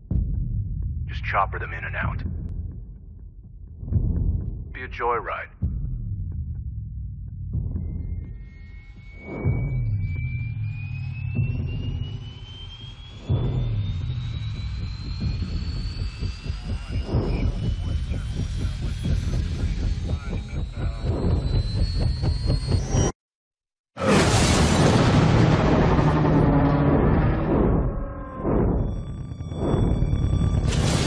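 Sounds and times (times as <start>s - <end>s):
slowly rising whine: 5.6s - 23.2s, 24.7s - 31.0s.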